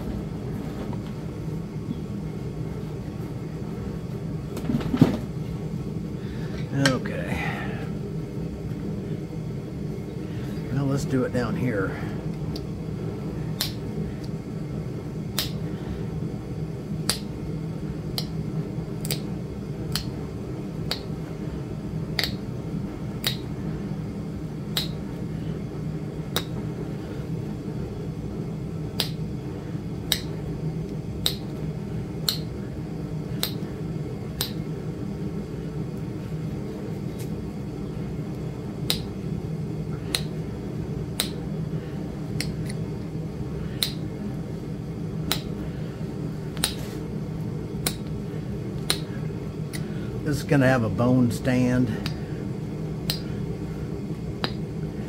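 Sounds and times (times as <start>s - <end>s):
steady low hum: 0.0s - 55.0s.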